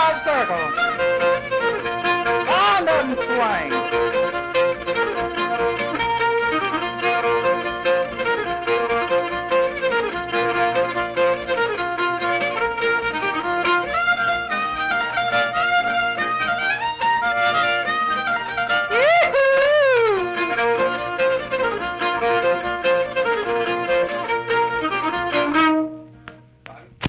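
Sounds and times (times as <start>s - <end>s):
fiddle tune: 0.0s - 26.3s
guitar accompaniment: 0.0s - 27.0s.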